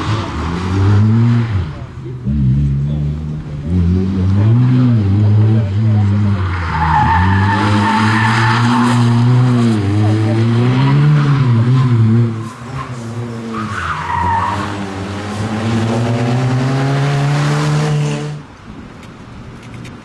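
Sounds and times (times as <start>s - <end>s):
rally car engine revving: 0.0s - 18.5s.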